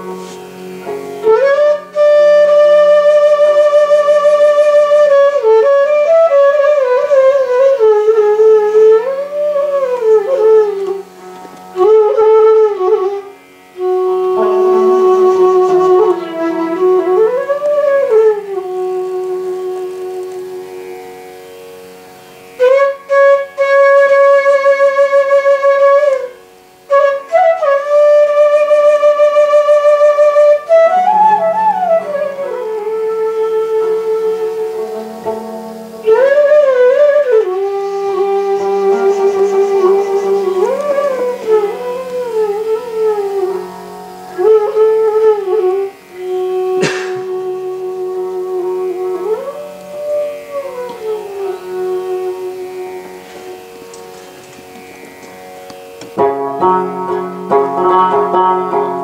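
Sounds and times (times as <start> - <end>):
bamboo flute melody: 0.0 - 59.0
bamboo flute held note: 44.3 - 54.8.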